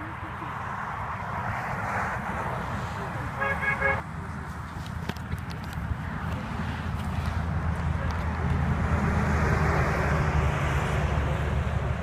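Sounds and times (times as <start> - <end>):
highway traffic noise: 0.0 - 12.0
car horn honks: 3.4 - 4.0.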